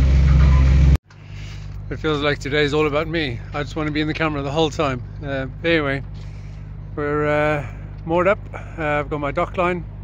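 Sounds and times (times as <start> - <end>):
boat engine low drone: 0.0 - 10.0
wind: 0.0 - 10.0.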